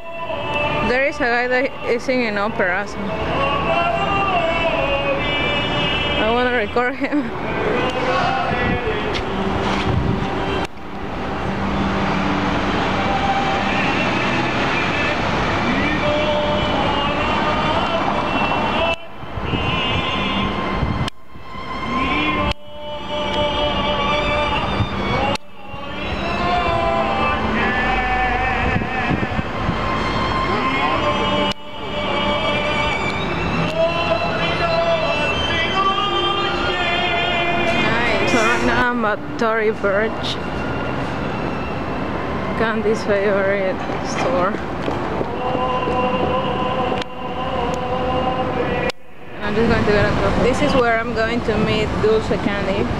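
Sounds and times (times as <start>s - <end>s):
man singing opera: 0.0s - 9.6s, 12.2s - 40.4s, 42.5s - 52.7s
city traffic: 0.0s - 52.9s.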